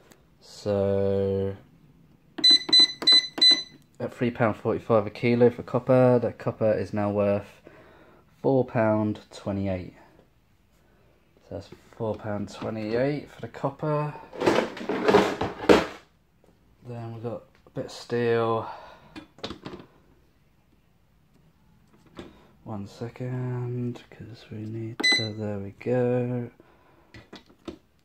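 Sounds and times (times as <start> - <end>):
short electronic keypad beeps: 2.4 - 3.8, 25.0 - 25.4.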